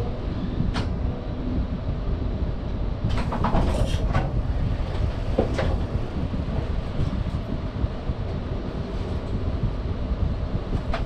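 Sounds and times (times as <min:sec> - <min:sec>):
train low hum and rumble: 0:00.0 - 0:11.0.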